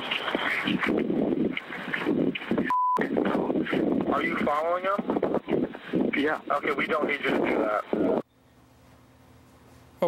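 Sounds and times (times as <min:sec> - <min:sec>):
breathy noise over phone line: 0:00.0 - 0:03.9
muffled rustling: 0:00.0 - 0:07.6
short steady beep: 0:02.7 - 0:03.0.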